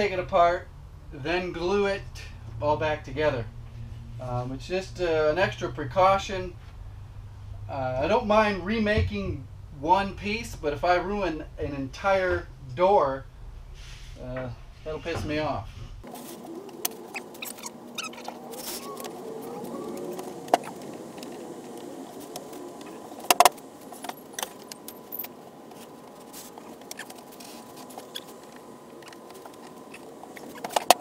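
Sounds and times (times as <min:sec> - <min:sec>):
background hum: 0:00.0 - 0:31.0
wooden parts knocking and sliding: 0:18.2 - 0:25.9, 0:26.5 - 0:31.0.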